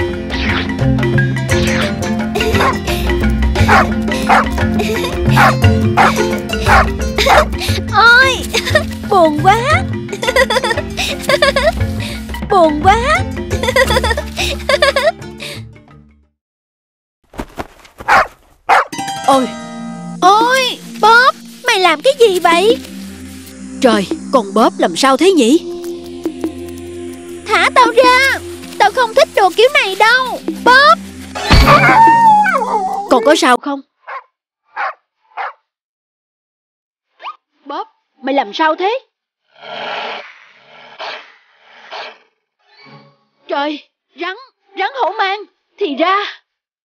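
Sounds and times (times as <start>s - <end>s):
background music: 0.0s - 16.3s, 18.7s - 33.6s
girl giggling: 2.4s - 2.8s, 4.3s - 7.8s, 8.5s - 8.9s, 10.2s - 11.8s, 13.6s - 15.2s
dog barking: 3.7s - 4.5s, 5.4s - 6.1s, 6.7s - 7.5s, 18.0s - 18.9s, 34.0s - 35.6s
dog yelping: 3.7s - 4.5s, 5.4s - 7.4s, 18.0s - 18.9s, 34.8s - 35.6s.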